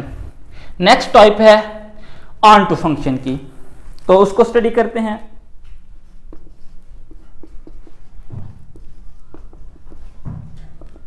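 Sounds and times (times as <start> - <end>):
marker pen writing on whiteboard: 5.2 - 11.0.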